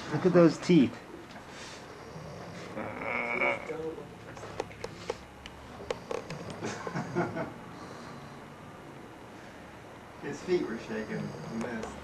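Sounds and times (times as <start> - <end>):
man snoring: 1.9 - 3.7, 5.8 - 8.0, 10.8 - 12.0.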